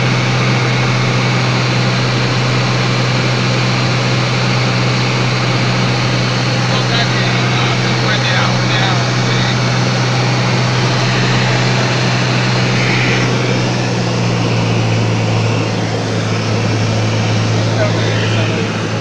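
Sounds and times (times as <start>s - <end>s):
propeller plane engine drone: 0.0s - 19.0s.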